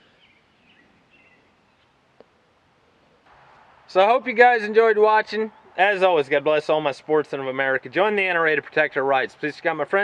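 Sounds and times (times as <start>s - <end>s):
faint bird chirps: 0.0s - 3.3s.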